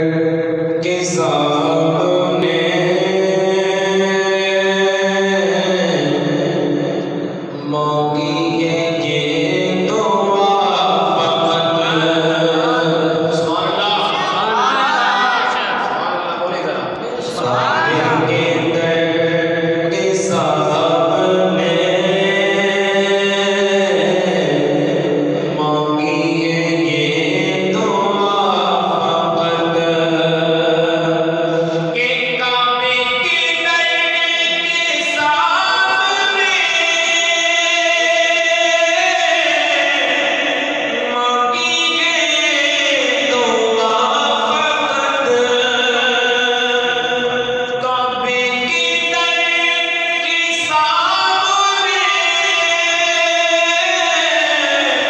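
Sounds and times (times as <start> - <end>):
man singing into a microphone: 0.0 - 16.2, 16.8 - 55.0.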